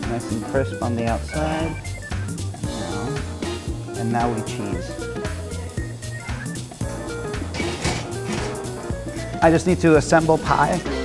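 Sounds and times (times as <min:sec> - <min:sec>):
background music with bass line: 0:00.0 - 0:11.0
oven rack sliding out: 0:07.5 - 0:08.8.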